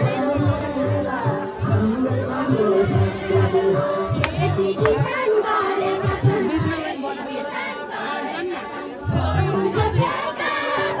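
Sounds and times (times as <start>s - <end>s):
group singing in chorus: 0.0s - 11.0s.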